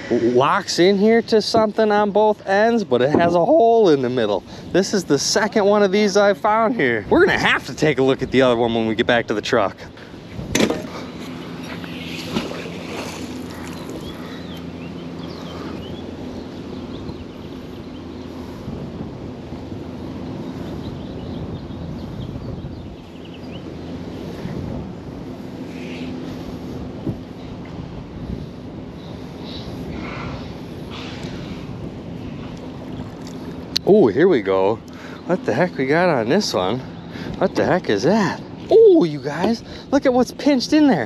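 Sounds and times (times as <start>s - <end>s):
wind noise on microphone: 0.0s - 5.7s, 6.8s - 34.4s
steady low hum: 0.0s - 41.0s.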